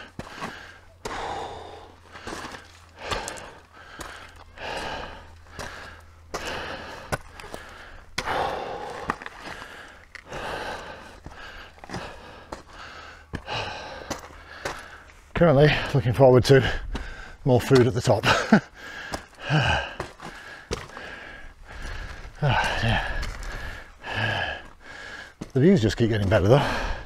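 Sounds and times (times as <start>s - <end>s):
man breathing hard: 0.0s - 17.5s, 18.6s - 25.6s, 26.4s - 27.0s
boots clicking on loose stones: 0.0s - 27.0s.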